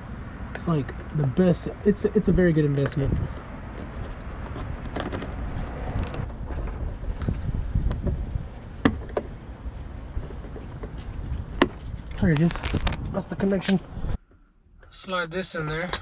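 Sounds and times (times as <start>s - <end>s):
low rumble of handling noise: 0.0s - 13.2s.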